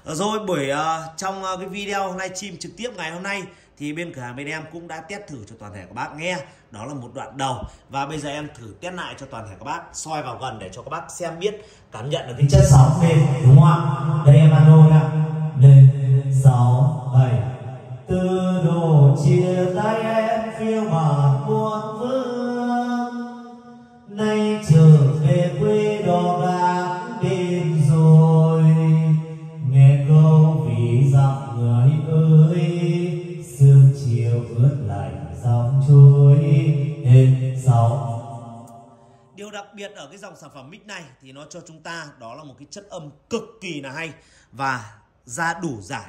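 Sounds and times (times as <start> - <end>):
person singing into a microphone: 12.5 - 38.3.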